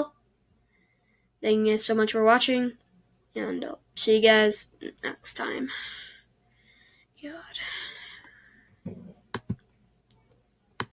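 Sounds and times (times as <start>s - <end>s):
person whispering: 7.2s - 8.0s.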